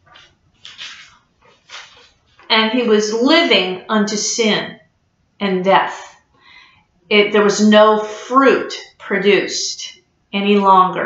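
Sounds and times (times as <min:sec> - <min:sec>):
paper card rustling: 0:00.0 - 0:02.5.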